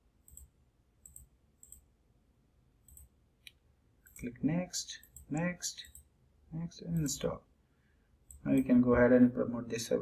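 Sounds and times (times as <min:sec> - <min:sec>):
computer mouse clicks: 0:00.2 - 0:01.9, 0:02.8 - 0:04.3.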